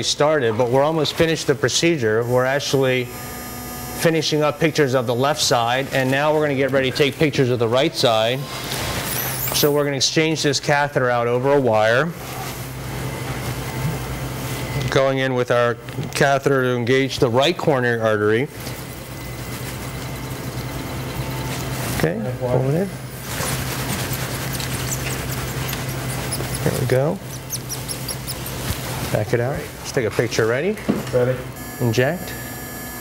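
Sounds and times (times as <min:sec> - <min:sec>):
equipment hum and ventilation hiss: 0:00.0 - 0:33.0
rapid high-pitched chirping: 0:18.9 - 0:21.8, 0:23.2 - 0:28.8.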